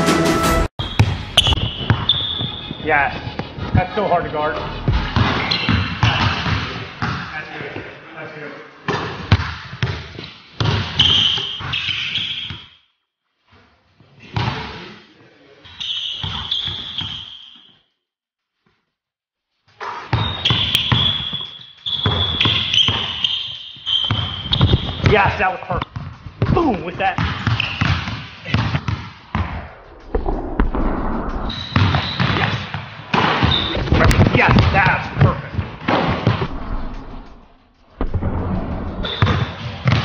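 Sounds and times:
basketball bouncing on hardwood floor: 0.8s - 2.6s, 27.2s - 29.6s, 39.1s - 40.0s
sneaker squeaks: 0.8s - 3.8s, 5.0s - 7.2s, 8.9s - 12.9s, 15.7s - 17.9s, 19.8s - 26.2s, 27.2s - 28.7s, 31.5s - 32.7s, 33.3s - 33.9s, 39.0s - 40.0s.

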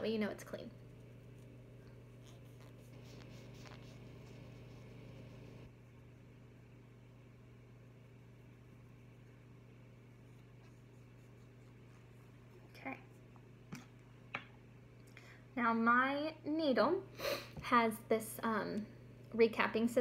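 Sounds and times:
steady low hum: 0.0s - 20.0s
wipe scrubbing rubber vial top: 0.9s - 5.6s.

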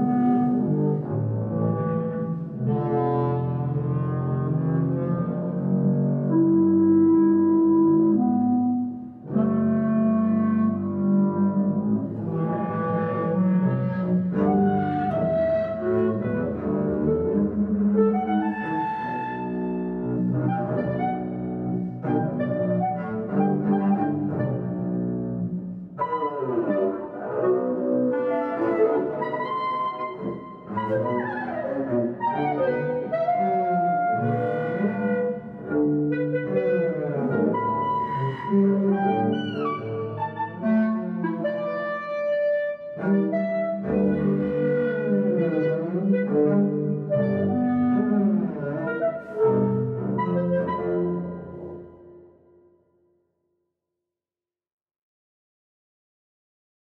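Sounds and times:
bowed double bass: 0.0s - 52.3s
clarinet playing: 0.0s - 52.4s.

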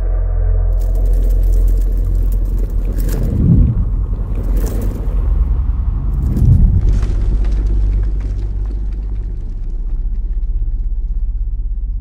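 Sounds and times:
deep booms: 0.0s - 10.0s
deep rumble: 0.0s - 12.0s.

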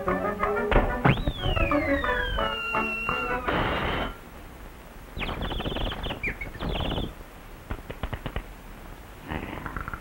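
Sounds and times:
cartoon birdlike chirping: 1.1s - 3.5s, 5.2s - 7.2s
sharp clicks: 7.7s - 8.5s.

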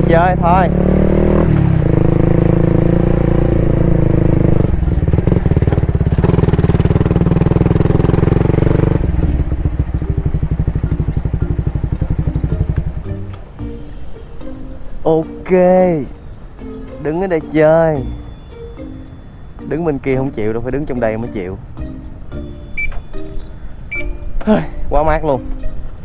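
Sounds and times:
motorcycle engine running: 0.0s - 13.6s
background music: 0.0s - 26.0s.

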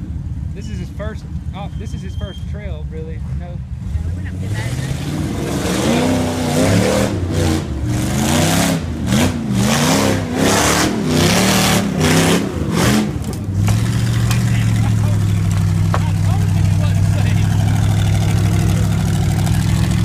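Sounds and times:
buggy engine revving: 0.0s - 20.0s.

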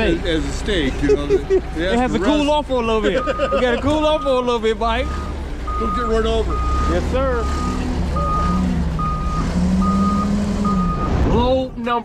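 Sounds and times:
low engine hum: 0.0s - 11.8s
forklift backup alarm beeping: 3.2s - 11.2s.

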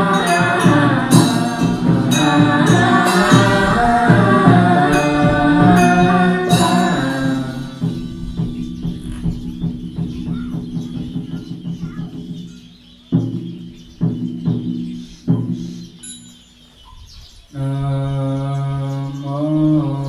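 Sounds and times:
group of voices chanting: 0.0s - 8.0s
ringing strikes: 0.0s - 16.7s.

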